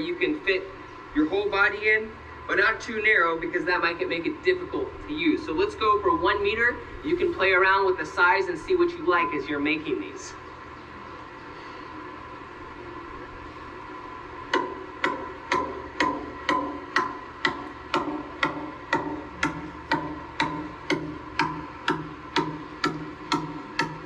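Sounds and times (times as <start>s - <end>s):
mallet pounding bamboo stick: 14.5s - 24.0s.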